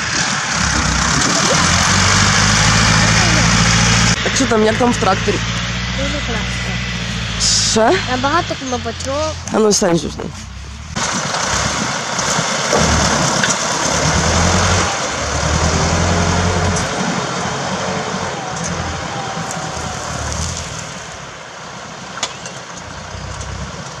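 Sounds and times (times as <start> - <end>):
tractor diesel engine under load: 0.0 - 24.0.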